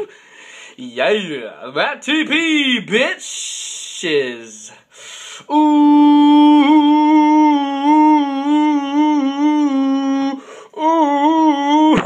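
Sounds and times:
person humming: 0:05.5 - 0:12.0.

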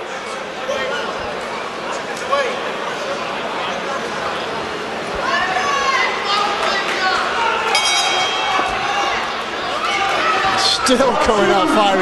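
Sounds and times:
voices in a large hall: 0:00.0 - 0:12.0
bell ring: 0:07.7 - 0:08.6.

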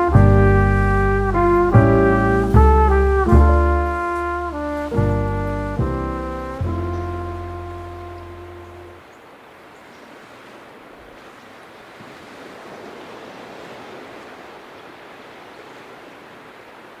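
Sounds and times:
surf washing onto beach: 0:00.0 - 0:06.4, 0:07.4 - 0:17.0.

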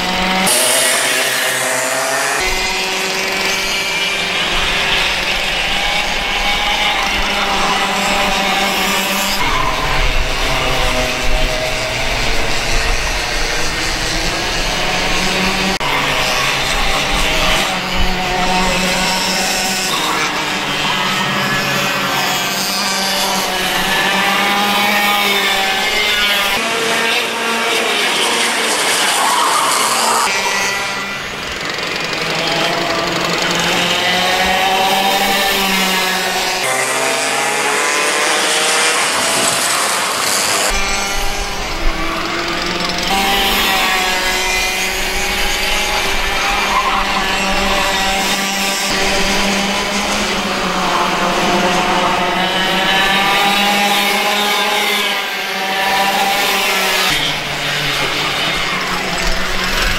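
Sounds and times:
kart engines racing: 0:00.0 - 0:59.9.

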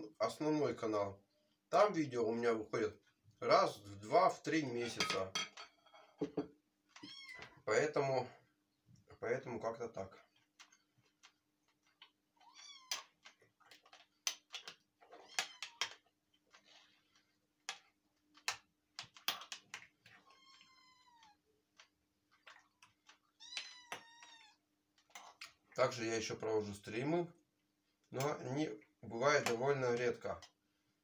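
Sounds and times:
cat meowing: 0:07.0 - 0:07.6, 0:12.4 - 0:13.1, 0:20.2 - 0:21.4, 0:23.3 - 0:24.6.

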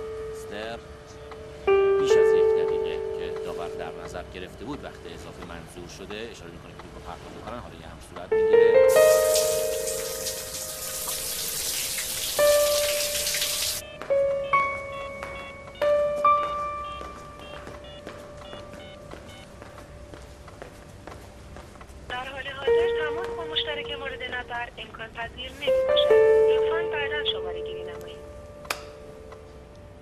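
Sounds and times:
background music of held notes: 0:00.0 - 0:06.4, 0:08.2 - 0:20.5, 0:22.6 - 0:24.6, 0:25.6 - 0:30.0
shower spray running: 0:08.9 - 0:13.8.

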